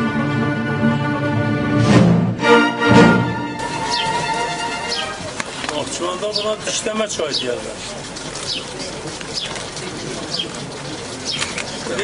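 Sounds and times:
pigeons cooing: 7.4s - 12.0s.

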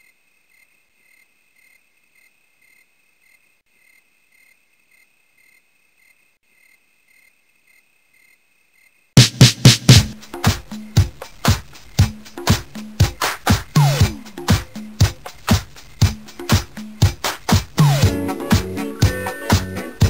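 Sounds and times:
crickets chirping: 0.0s - 9.2s
loud music with heavy beats: 9.2s - 20.0s.

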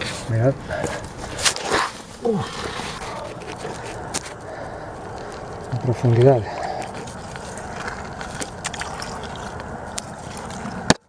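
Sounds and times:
small clicks and splashes: 7.3s - 10.7s.

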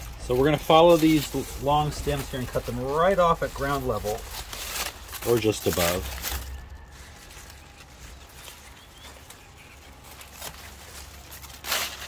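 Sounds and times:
steady low rumble: 0.0s - 8.9s.

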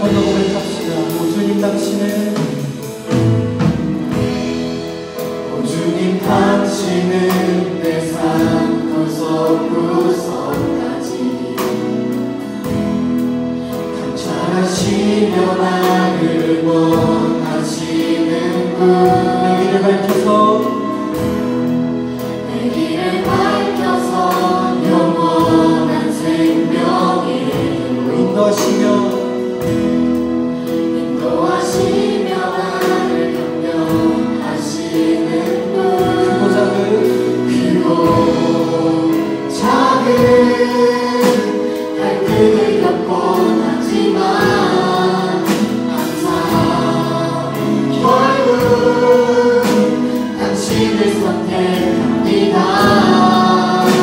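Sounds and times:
group singing praise song: 0.0s - 3.0s, 4.1s - 12.8s, 13.5s - 21.4s, 22.2s - 54.0s
instrumental backing: 0.0s - 54.0s.

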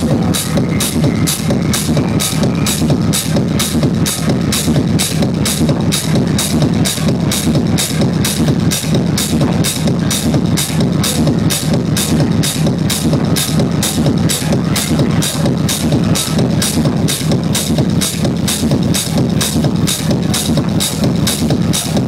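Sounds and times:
techno over club sound system: 0.0s - 22.0s.

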